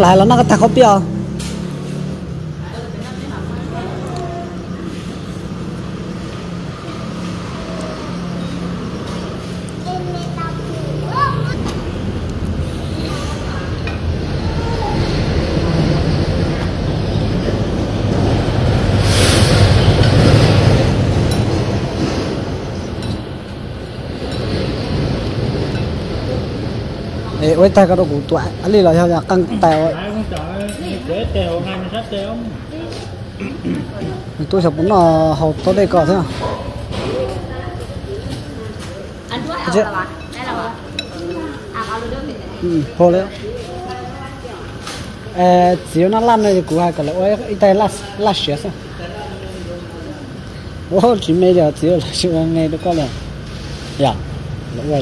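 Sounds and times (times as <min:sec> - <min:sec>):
voices talking: 0:00.0 - 0:55.0
people talking indistinctly: 0:26.2 - 0:53.2
utensils clinking ceramic bowls: 0:40.1 - 0:41.7.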